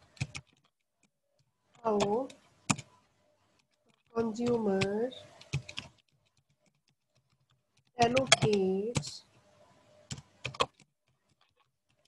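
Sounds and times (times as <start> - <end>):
keyboard typing: 0.0 - 9.2, 10.0 - 12.0.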